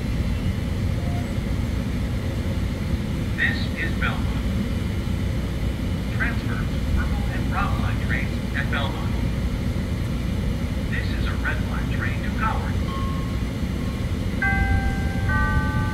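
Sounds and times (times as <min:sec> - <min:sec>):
train rumbling at station: 0:00.0 - 0:15.9
voice announcement: 0:03.4 - 0:04.5, 0:06.1 - 0:09.3, 0:10.9 - 0:13.0.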